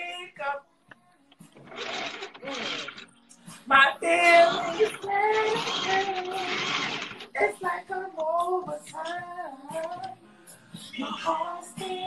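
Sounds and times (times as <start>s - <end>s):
person singing in wavering notes: 3.6s - 10.2s.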